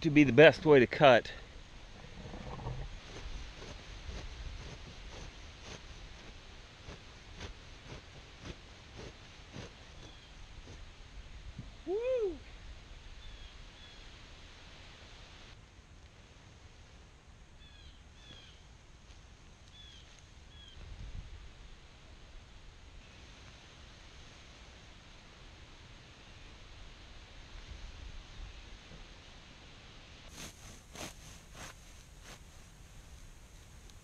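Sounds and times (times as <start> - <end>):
small birds chirping: 9.0 - 10.8, 19.7 - 20.8
loud voice-like call: 11.9 - 12.5.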